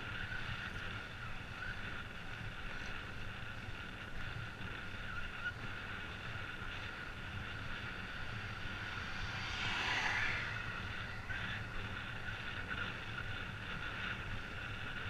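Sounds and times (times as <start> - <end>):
road rumble: 0.0 - 15.0
wind: 0.0 - 15.0
vehicle passing: 5.8 - 14.6.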